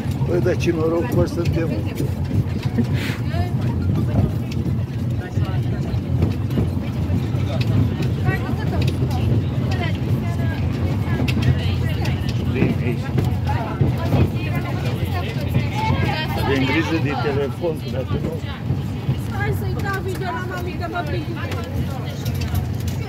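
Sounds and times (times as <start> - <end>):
voices talking and calling: 0.0 - 23.0.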